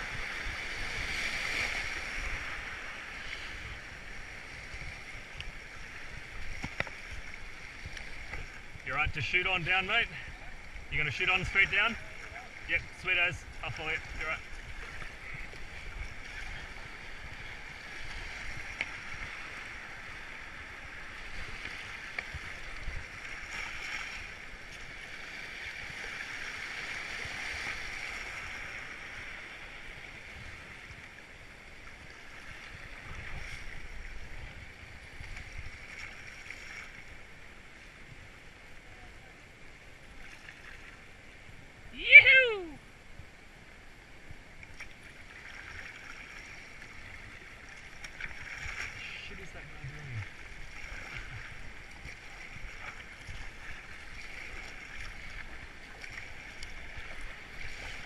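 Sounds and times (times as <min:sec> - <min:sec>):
whitewater rushing and hissing: 0:00.0 - 0:58.0
person yelling: 0:41.9 - 0:42.8.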